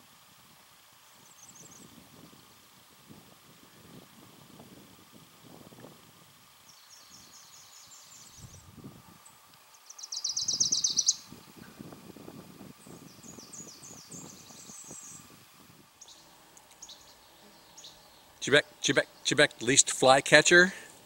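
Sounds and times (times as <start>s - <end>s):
faint high birdsong: 0.9s - 2.7s, 6.5s - 12.0s, 12.7s - 19.9s
warbler chattering chips: 9.2s - 11.8s, 16.0s - 19.8s.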